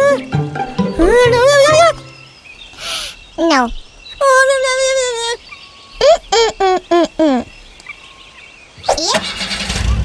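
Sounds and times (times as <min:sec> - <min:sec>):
high-pitched cartoon voice: 0:01.0 - 0:02.0, 0:06.0 - 0:07.5, 0:08.8 - 0:09.3
cartoon car engine running: 0:09.1 - 0:10.0.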